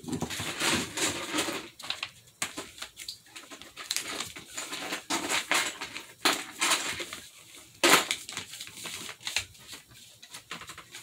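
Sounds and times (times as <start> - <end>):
paper rustling and crinkling: 0.0 - 11.0.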